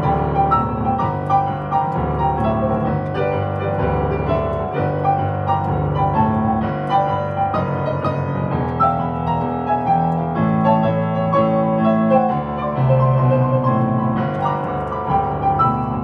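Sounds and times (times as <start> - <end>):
solo piano hymn: 0.0 - 16.0.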